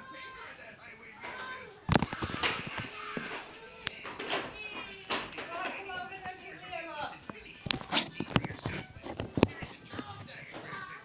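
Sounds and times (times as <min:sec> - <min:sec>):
man speaking: 0:02.9 - 0:11.0.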